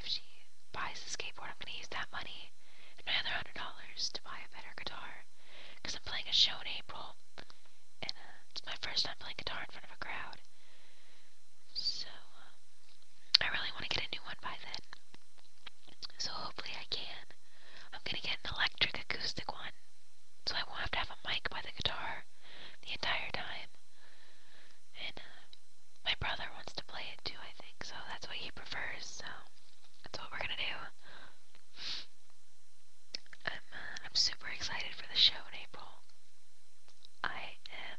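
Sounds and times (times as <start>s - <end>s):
person whispering: 0.0s - 7.2s, 8.0s - 10.4s, 11.7s - 12.6s, 13.3s - 14.8s, 16.0s - 17.3s, 17.9s - 19.8s, 20.5s - 23.7s, 25.0s - 25.5s, 26.1s - 31.0s, 33.2s - 36.0s, 37.2s - 37.9s.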